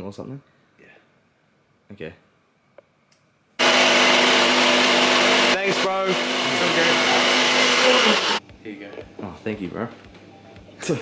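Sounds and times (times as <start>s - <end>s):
blender running: 3.6s - 8.4s.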